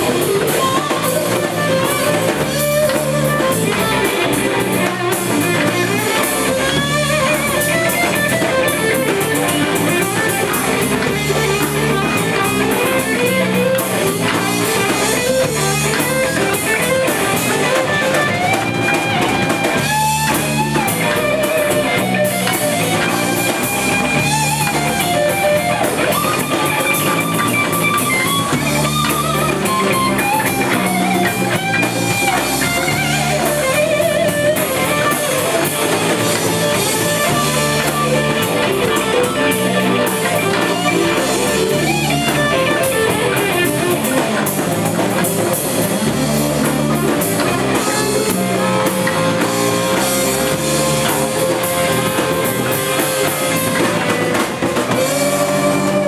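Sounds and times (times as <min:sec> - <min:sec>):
bass guitar: 0:00.0 - 0:56.0
congas: 0:00.0 - 0:56.0
drum kit: 0:00.0 - 0:56.0
electric guitar: 0:00.0 - 0:56.0.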